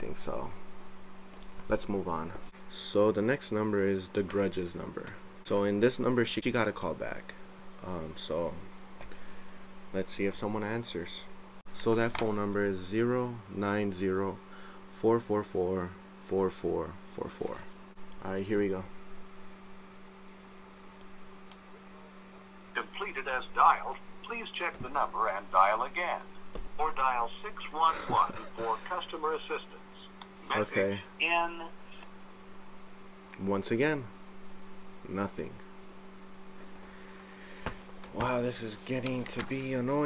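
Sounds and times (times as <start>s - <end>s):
low hum with faint hiss: 0.0s - 40.0s.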